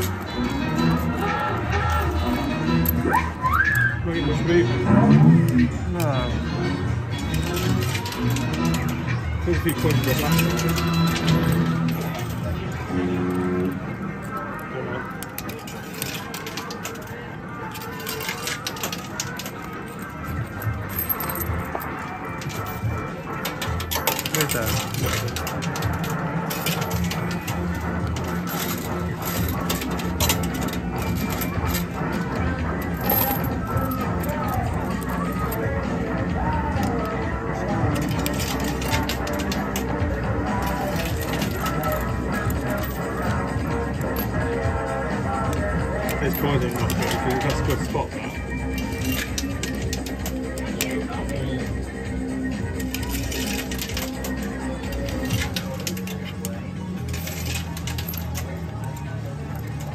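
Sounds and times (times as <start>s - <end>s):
coins clinking in coin pusher: 0.0s - 3.0s, 7.1s - 59.9s
background music: 0.0s - 59.9s.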